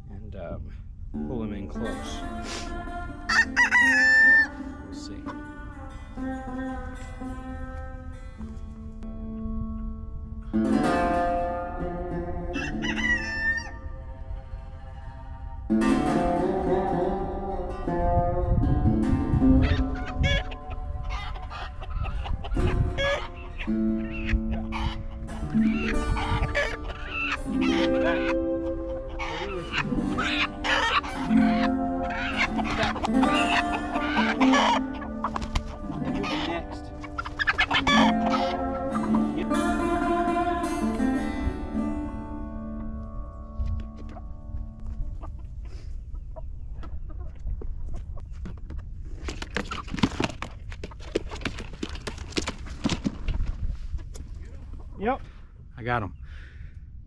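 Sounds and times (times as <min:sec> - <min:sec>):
music with plucked strings: 0:01.1 - 0:45.6
chickens clucking: 0:02.2 - 0:04.6, 0:12.5 - 0:14.1, 0:19.1 - 0:41.8, 0:43.9 - 0:53.4
rooster crowing: 0:03.3 - 0:04.6, 0:12.5 - 0:13.9.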